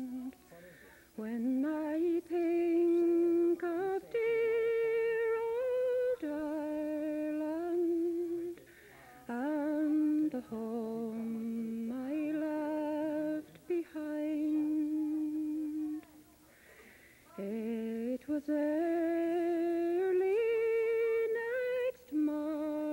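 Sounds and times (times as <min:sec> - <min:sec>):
woman humming: 0:09.3 - 0:16.2.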